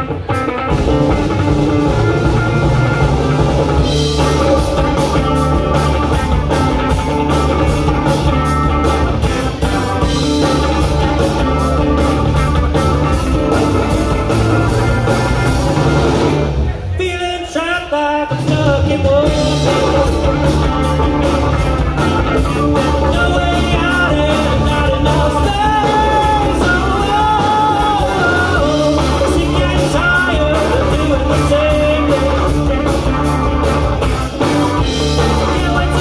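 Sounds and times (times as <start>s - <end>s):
lead guitar line bending pitch: 0.0s - 17.0s, 19.3s - 36.0s
live rock band playing: 0.0s - 36.0s.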